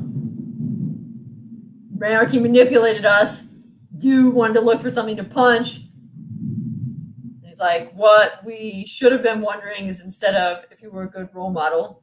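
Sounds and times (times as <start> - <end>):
low rumble of thunder: 0.0 - 7.7.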